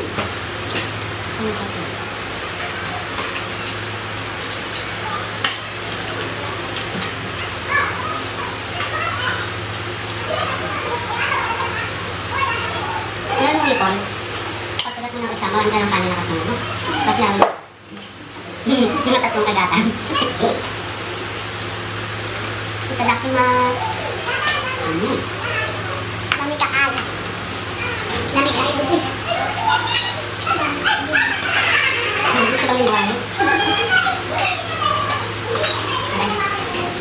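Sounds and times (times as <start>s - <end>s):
voices: 1.3s - 21.2s, 21.8s - 37.0s
people chatting: 1.4s - 2.0s, 10.2s - 14.2s, 14.9s - 17.6s, 18.6s - 20.7s, 22.9s - 27.1s, 28.2s - 37.0s.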